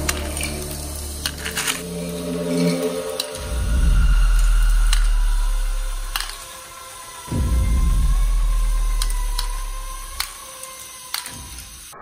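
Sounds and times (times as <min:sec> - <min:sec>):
low rumble: 0:00.0 - 0:06.5, 0:07.3 - 0:10.4
toy motor and gears whining: 0:00.0 - 0:12.0
plastic balls dropping into bin: 0:06.1 - 0:06.5.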